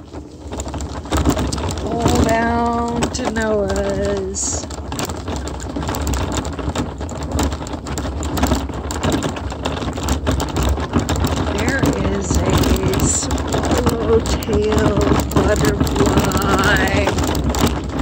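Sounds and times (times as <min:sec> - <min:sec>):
small stones crackling and popping: 0:00.0 - 0:18.0
wheels rolling on gravel: 0:00.0 - 0:18.0
person's voice: 0:01.8 - 0:04.7, 0:11.5 - 0:17.2.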